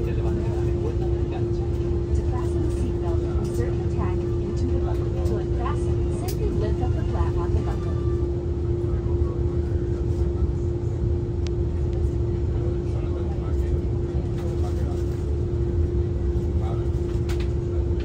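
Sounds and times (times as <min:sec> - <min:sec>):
airplane cabin rumble: 0:00.0 - 0:18.0
faint voices: 0:00.0 - 0:18.0.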